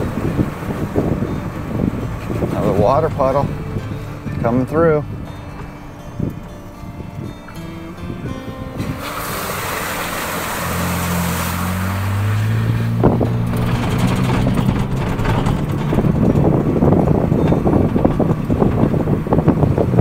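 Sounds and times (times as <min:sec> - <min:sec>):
engine accelerating: 0:00.0 - 0:20.0
water splashing: 0:00.0 - 0:20.0
wind buffeting microphone: 0:00.0 - 0:20.0.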